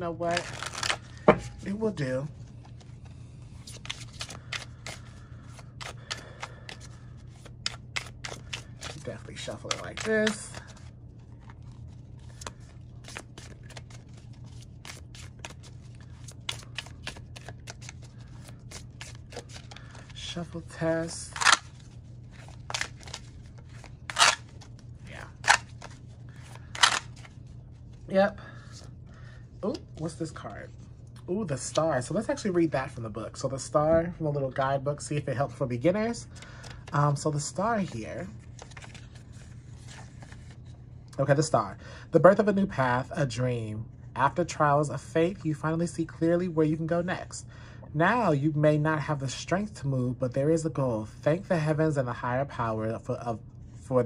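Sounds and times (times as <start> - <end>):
cards being shuffled: 0.2 - 28.1, 37.8 - 40.8
paper pages rustling: 0.3 - 20.4, 21.3 - 28.0, 37.8 - 40.8.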